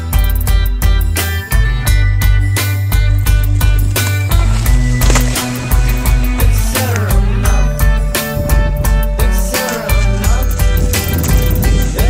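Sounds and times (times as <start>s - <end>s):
song with drum beat and bass: 0.0s - 12.0s.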